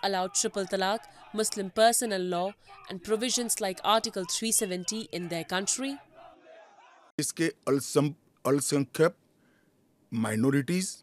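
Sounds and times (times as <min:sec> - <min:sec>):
man speaking: 0:07.2 - 0:09.2, 0:10.1 - 0:11.0.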